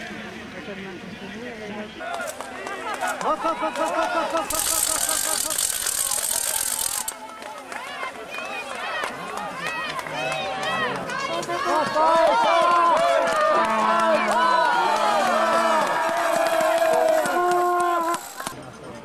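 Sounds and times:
spectators cheering and shouting: 2.0s - 18.6s.

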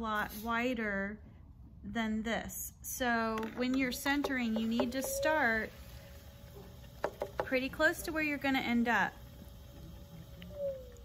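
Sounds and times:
potter's wheel humming: 3.2s - 11.0s
faint whining tone: 3.6s - 11.0s.

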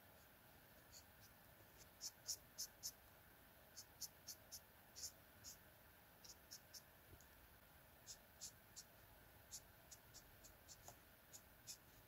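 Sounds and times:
marker scratching on paper: 0.1s - 3.0s, 3.7s - 5.6s, 6.2s - 6.9s, 8.0s - 12.0s.

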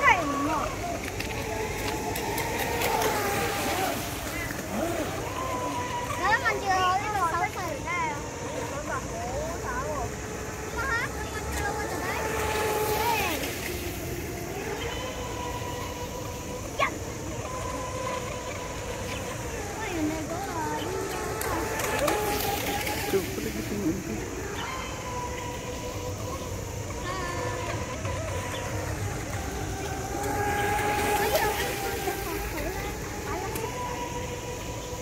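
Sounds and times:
model speedboat motor whining: 0.0s - 35.0s
people's voices: 0.0s - 35.0s.

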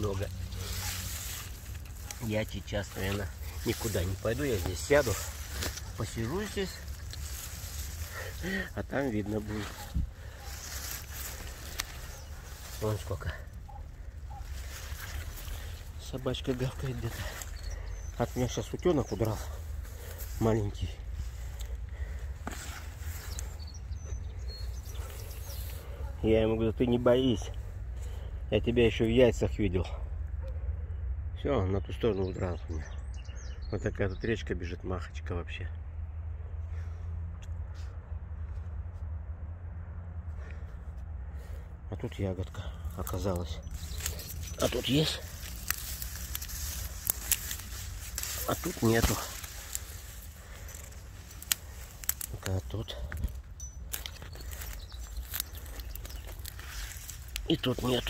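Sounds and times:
footsteps through tall grass: 0.0s - 28.3s, 42.8s - 58.0s
low steady rumble: 0.0s - 33.1s, 35.0s - 58.0s.

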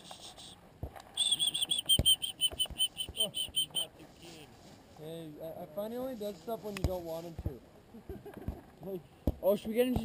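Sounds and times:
animal high chirping call: 1.2s - 3.9s.

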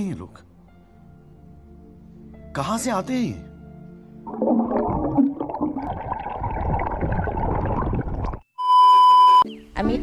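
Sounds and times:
muffled underwater bubbling: 4.3s - 8.4s.

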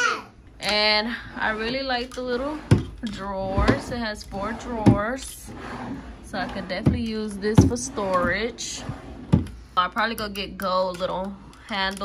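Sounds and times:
young child babbling: 0.0s - 0.3s
sharp knocks of desk drawers: 2.6s - 5.2s, 6.7s - 9.6s.

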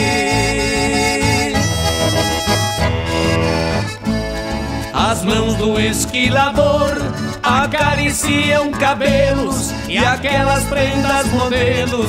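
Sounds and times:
acoustic guitars: 0.0s - 12.0s
button accordion melody: 0.0s - 12.0s
double bass: 0.0s - 12.0s.

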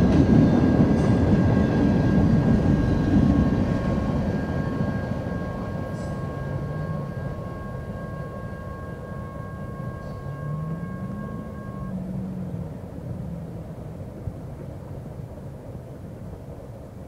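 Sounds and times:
freight train rumbling: 0.0s - 17.0s
high two-note tone: 5.9s - 12.6s.

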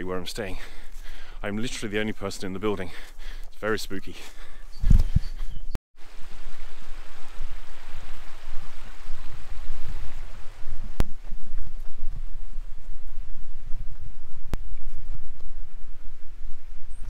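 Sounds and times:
wind buffeting microphone: 4.7s - 17.0s.

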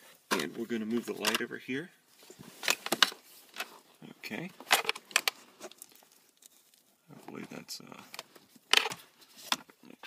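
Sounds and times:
handling rustles: 0.1s - 9.8s.

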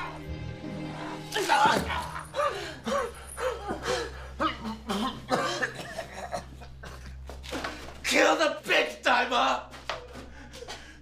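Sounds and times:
person coughing and gasping: 1.6s - 7.3s.

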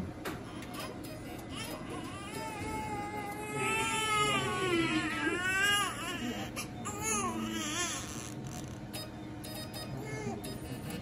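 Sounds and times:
newborn baby crying: 1.5s - 8.6s, 10.0s - 11.0s.

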